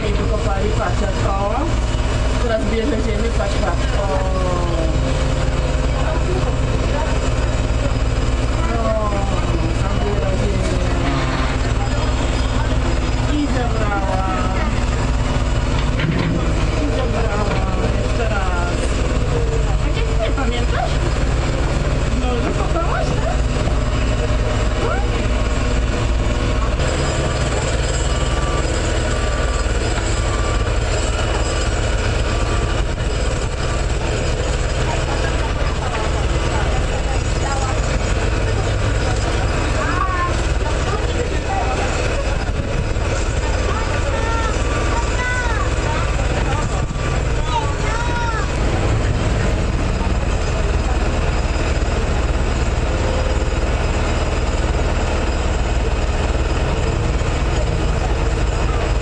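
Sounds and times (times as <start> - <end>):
excavator diesel engine rumbling: 0.0 - 59.0
indistinct voices: 0.0 - 59.0.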